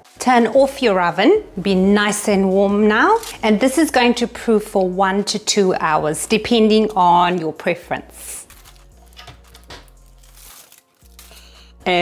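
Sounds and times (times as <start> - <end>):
aluminium foil crinkling: 3.0 - 3.4, 8.2 - 11.9.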